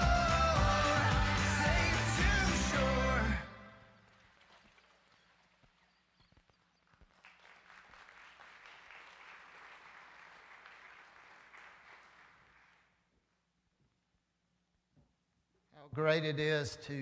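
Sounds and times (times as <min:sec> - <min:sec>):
faint applause: 0:00.0 - 0:13.0.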